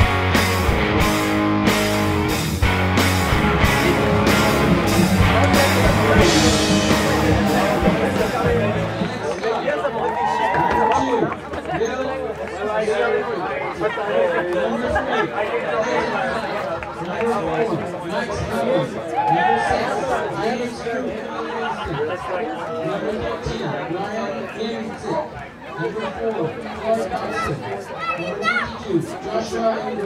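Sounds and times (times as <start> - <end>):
crowd chattering: 0.0 - 30.0.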